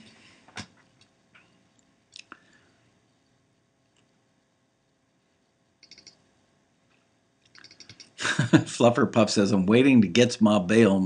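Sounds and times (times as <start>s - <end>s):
faint short clicks: 5.8s - 6.2s.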